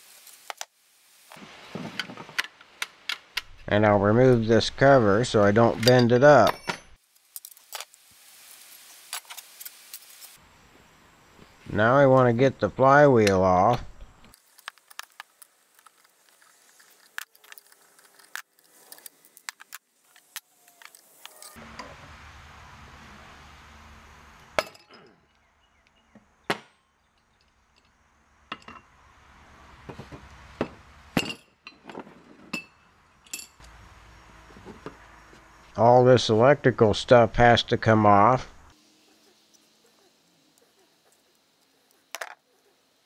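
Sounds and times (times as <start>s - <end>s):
faint hiss: 0.0s - 2.3s, 7.0s - 24.5s.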